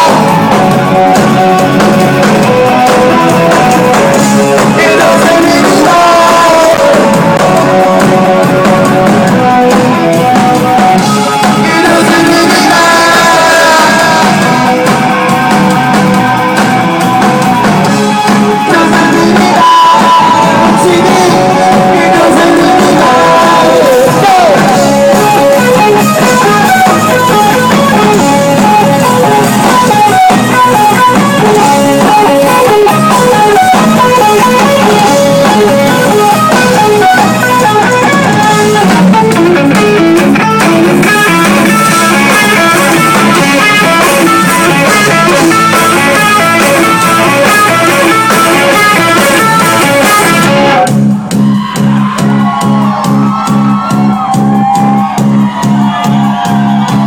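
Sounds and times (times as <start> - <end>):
bass-heavy groove: 0.0 - 57.0
electric guitar lead line: 0.0 - 57.0
rock band playing live: 0.0 - 57.0.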